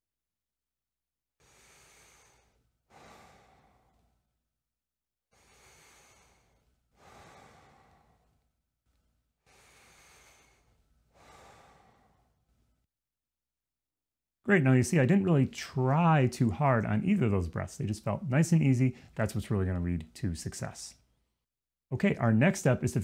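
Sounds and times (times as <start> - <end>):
man breathing through mouth: 1.4 - 4.2, 5.3 - 8.5, 9.4 - 12.6.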